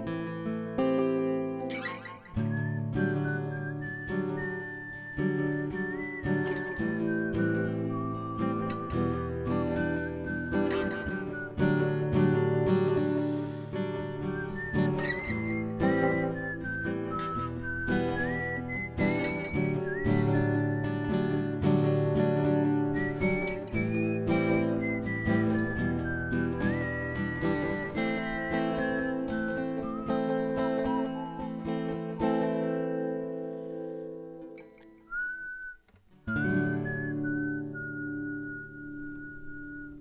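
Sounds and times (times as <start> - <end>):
acoustic guitar strummed: 0.0 - 40.0
person whistling a melody: 1.7 - 40.0.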